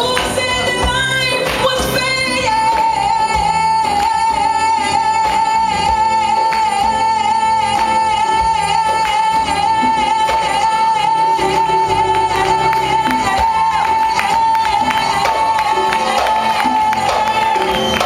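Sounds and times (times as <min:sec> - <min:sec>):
congas: 0:00.0 - 0:18.0
guitar: 0:00.0 - 0:18.0
live band playing: 0:00.0 - 0:18.0.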